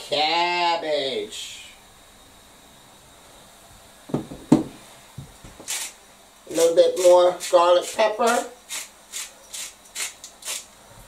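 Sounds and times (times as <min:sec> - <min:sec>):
seasoning shaker rattling: 0:05.6 - 0:10.7.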